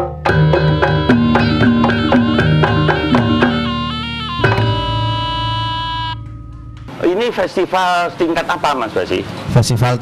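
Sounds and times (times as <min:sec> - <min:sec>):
gamelan held note: 0:00.3 - 0:07.2.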